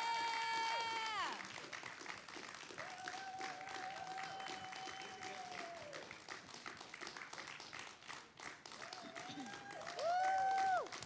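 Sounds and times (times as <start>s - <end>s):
person cheering: 0.0s - 1.4s, 2.8s - 6.0s, 8.8s - 11.0s
audience applauding: 0.0s - 11.0s.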